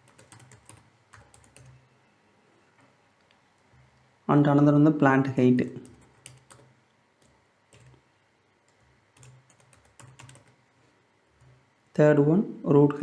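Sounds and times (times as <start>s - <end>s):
computer keyboard typing: 0.0s - 1.8s, 5.8s - 8.0s, 8.7s - 10.6s.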